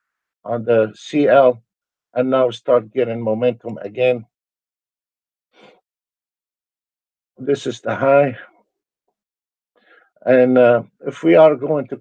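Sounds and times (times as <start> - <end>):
man breathing softly: 5.6 - 5.8, 9.8 - 10.2.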